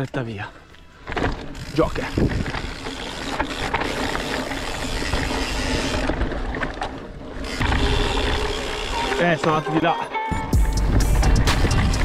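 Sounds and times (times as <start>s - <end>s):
bike drivetrain clicking and rattling: 0.0s - 9.9s, 10.6s - 12.0s
tyres rolling over dirt and stones: 0.9s - 9.8s
wind rumble on camera: 1.6s - 2.8s.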